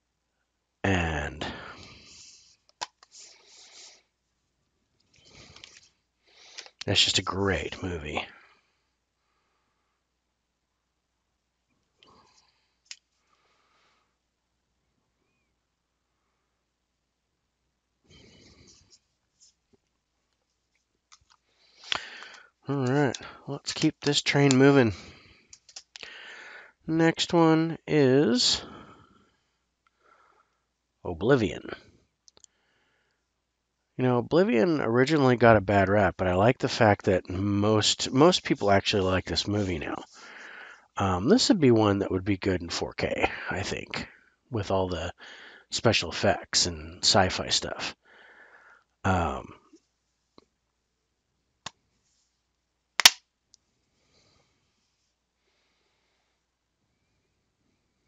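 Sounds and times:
metal case snapping open: 0:53.0 - 0:53.2.

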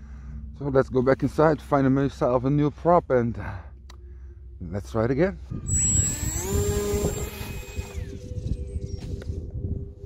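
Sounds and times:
low faint hum: 0:00.0 - 0:10.0
electric motor propeller whine: 0:05.6 - 0:09.7.

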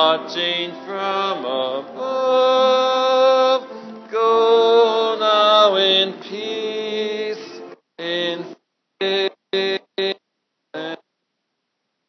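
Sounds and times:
person singing long notes: 0:00.0 - 0:08.6.

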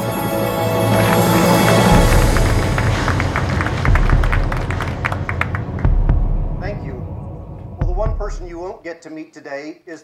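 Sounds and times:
audience clapping: 0:00.5 - 0:06.5
deep low rumble: 0:01.9 - 0:08.6.

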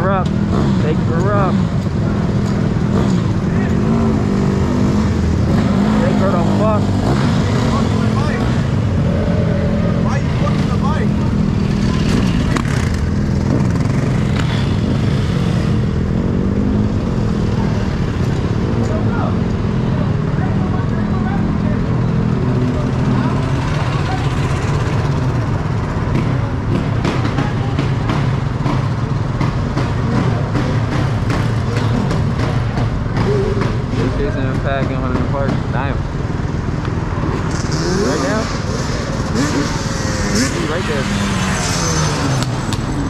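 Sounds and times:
people's voices: 0:00.0 - 0:15.8, 0:16.5 - 0:43.0
dirt bike engines idling: 0:00.0 - 0:43.0.

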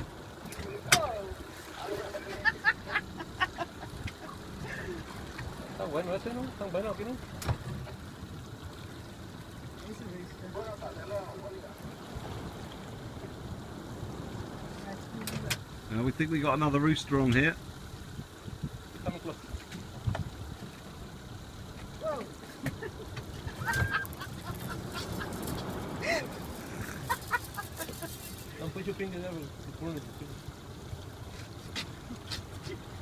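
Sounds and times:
boat engine hum: 0:00.0 - 0:33.0
water noise: 0:00.0 - 0:33.0.

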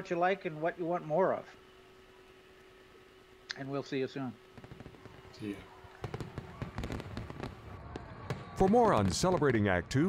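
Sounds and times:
fireworks cracking and popping: 0:04.4 - 0:09.8.

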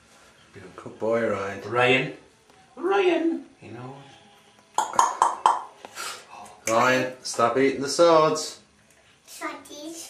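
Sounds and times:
plastic cup knocking in bathtub: 0:04.8 - 0:05.7.

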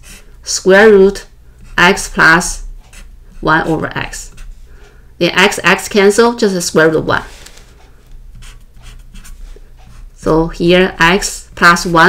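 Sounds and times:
marker pen writing on paper: 0:00.0 - 0:00.3, 0:01.5 - 0:04.6, 0:07.7 - 0:12.0.

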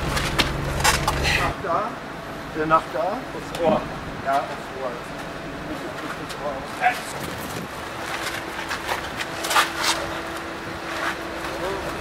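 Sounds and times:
steady low hum: 0:00.0 - 0:12.0
feet shuffling on cobblestones: 0:05.9 - 0:12.0.

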